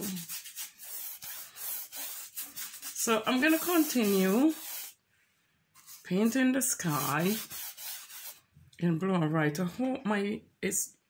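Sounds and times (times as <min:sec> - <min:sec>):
paintbrush scrubbing on canvas: 0:00.0 - 0:05.0, 0:05.8 - 0:08.4.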